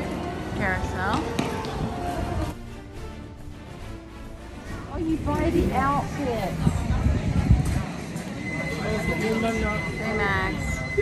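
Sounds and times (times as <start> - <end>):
indistinct voices of people: 4.6 - 11.0.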